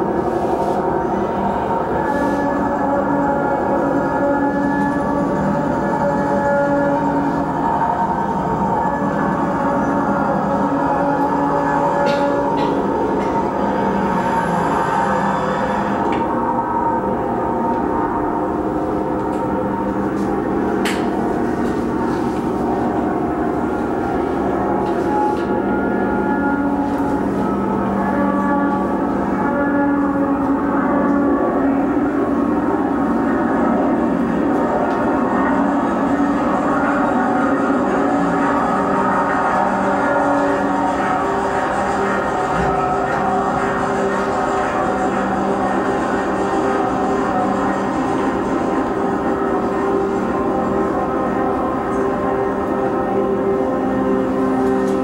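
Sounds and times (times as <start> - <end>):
dense drone with held tones: 0.0 - 55.0.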